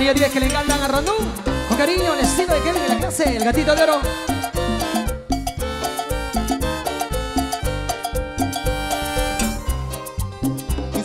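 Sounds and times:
live latin dance music: 0.0 - 11.0.

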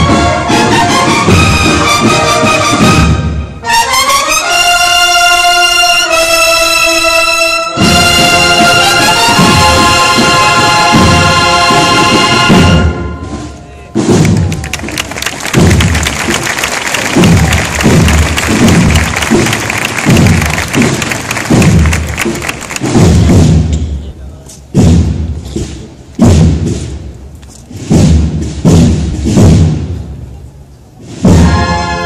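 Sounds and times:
bass drum beats: 14.0 - 24.0, 24.7 - 30.3.

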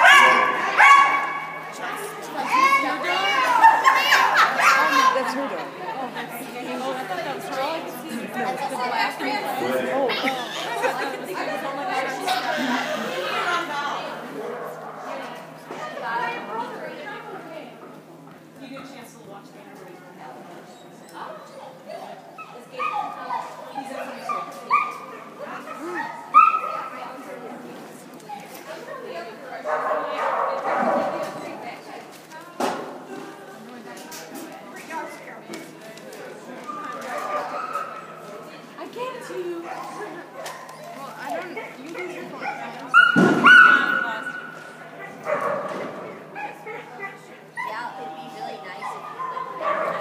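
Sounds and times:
dog barking in high yips: 0.0 - 1.6, 26.0 - 26.9, 42.4 - 44.3.

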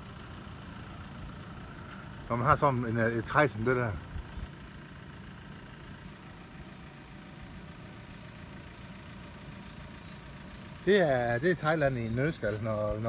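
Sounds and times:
low engine-like hum: 0.0 - 13.0.

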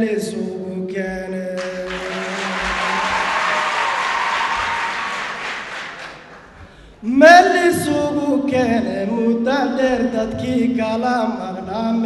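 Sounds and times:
audience applauding: 1.6 - 6.8.

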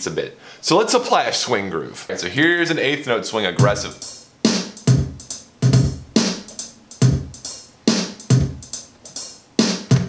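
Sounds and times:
programmed drum beat: 3.5 - 10.0.

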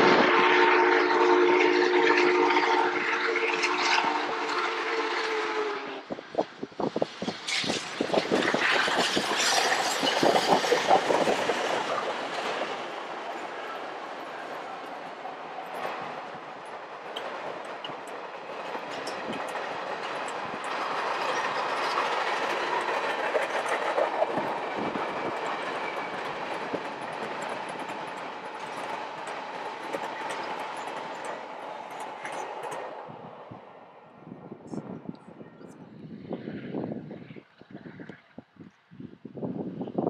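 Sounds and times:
gusty wind on microphone: 0.0 - 13.2, 18.8 - 40.0
train cars rolling by: 0.0 - 37.4
wheels clicking over rail joints: 7.2 - 33.1.

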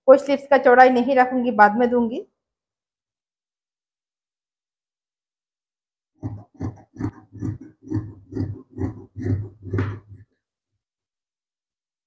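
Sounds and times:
scissors cutting fabric: 6.2 - 10.3.

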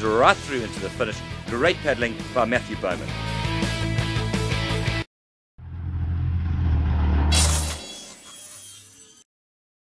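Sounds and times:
low rumble: 5.6 - 7.6
sharp hissing hit: 7.3 - 8.2.

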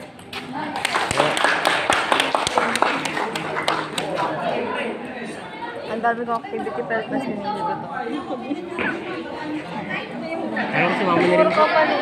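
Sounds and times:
voices chattering: 0.0 - 12.0.

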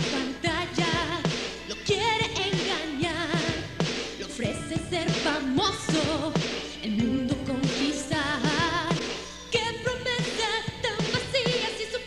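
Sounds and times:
backing band: 0.0 - 11.9
woman singing pop song: 0.0 - 12.0.

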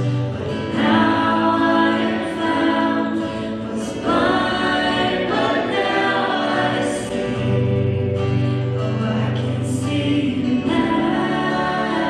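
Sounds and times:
acoustic guitar: 0.0 - 12.0
keyboard: 0.0 - 12.0
woman and man singing: 0.5 - 7.9, 8.7 - 12.0.

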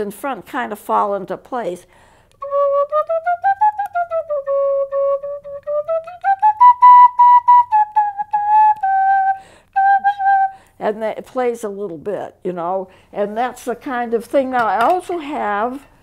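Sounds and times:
penny whistle playing tune: 2.4 - 10.6.

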